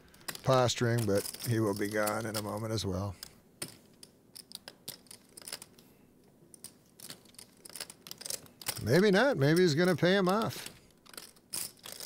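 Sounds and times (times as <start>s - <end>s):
man speaking: 0.4s - 3.2s, 8.8s - 10.7s.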